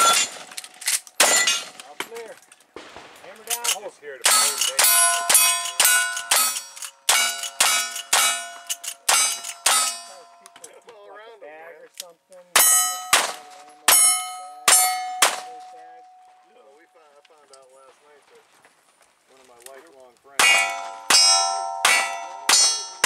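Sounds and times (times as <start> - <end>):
steel targets ringing: 0.0 - 0.5, 1.2 - 1.8, 3.6 - 10.6, 12.6 - 16.6, 20.4 - 23.0
rifle shots: 2.8 - 9.9, 12.6 - 13.6.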